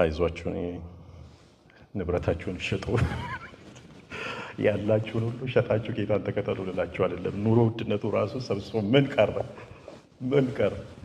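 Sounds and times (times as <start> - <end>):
man's amplified impassioned speech: 4.6 - 9.6.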